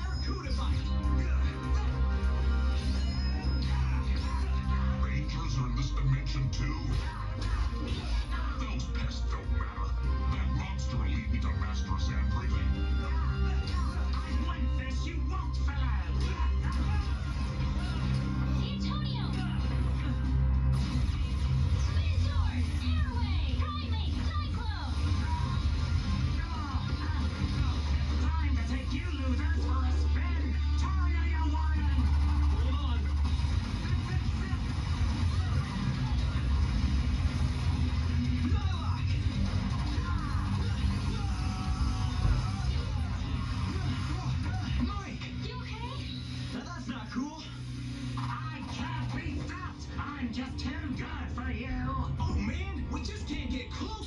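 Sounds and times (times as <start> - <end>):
action background music: 0.0 - 54.0
heavy bass drone: 31.7 - 44.9.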